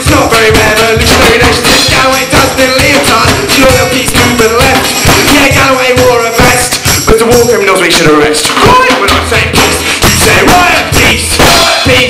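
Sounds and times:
acoustic guitar strumming: 0:00.0 - 0:07.2
drum kit played with sticks: 0:00.0 - 0:12.0
man singing: 0:00.0 - 0:12.0.

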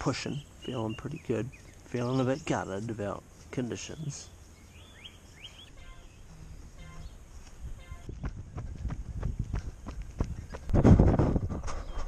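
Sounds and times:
running footsteps on asphalt: 0:07.3 - 0:11.6.

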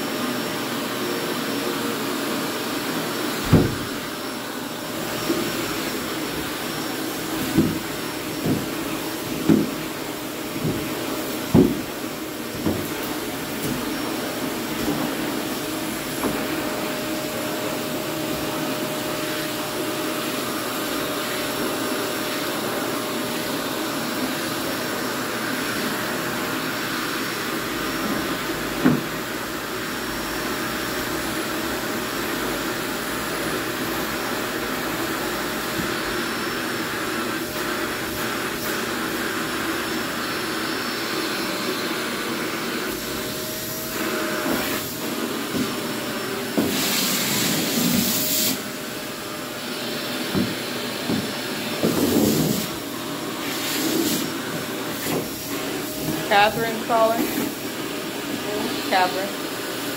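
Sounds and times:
vacuum cleaner running: 0:00.0 - 0:59.9
knock: 0:11.5 - 0:11.9.

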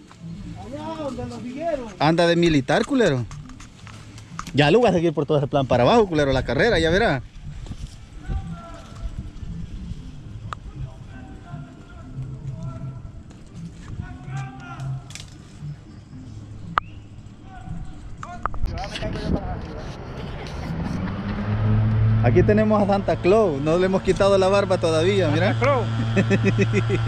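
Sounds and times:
distant voices talking: 0:00.0 - 0:27.0
low outdoor rumble: 0:00.0 - 0:27.0
steady low hum: 0:00.0 - 0:27.0
sharp clicks: 0:02.4 - 0:04.9.

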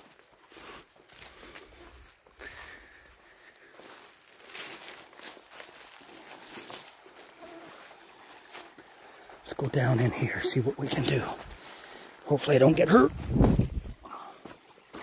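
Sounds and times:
footsteps on forest trail: 0:00.0 - 0:15.0
rustling through undergrowth: 0:00.0 - 0:15.0.

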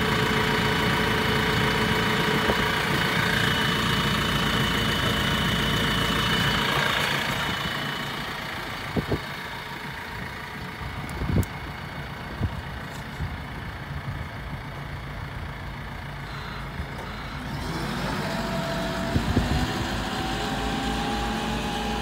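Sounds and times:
diesel engine idling and revving: 0:00.0 - 0:22.0
rising whine of driving machine: 0:16.1 - 0:22.0.

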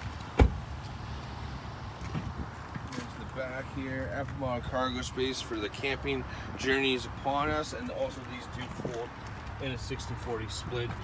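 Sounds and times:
car door shutting thud: 0:00.3 - 0:00.6.

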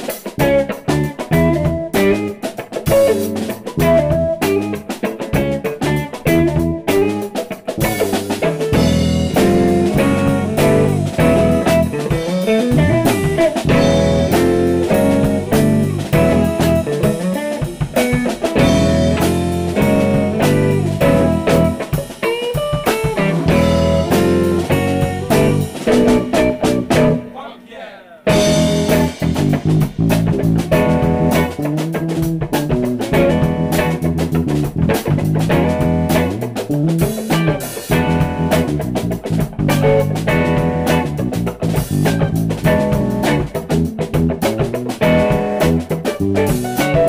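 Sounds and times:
funk band playing: 0:00.0 - 0:47.0.

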